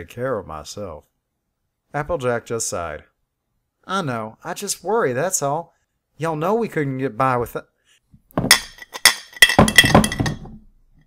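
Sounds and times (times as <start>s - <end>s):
plate smashing: 8.4s - 10.6s.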